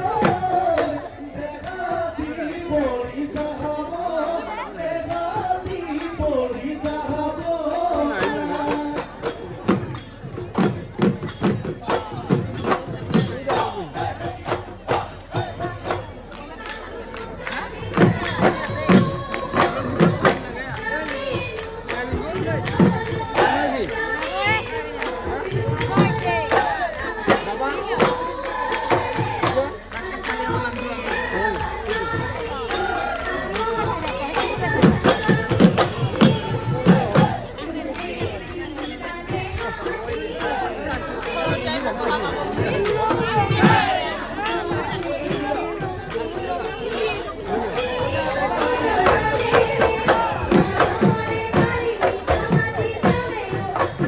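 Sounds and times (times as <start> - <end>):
crowd noise and voices: 0.0 - 54.0
dhol drum strokes: 0.0 - 54.0.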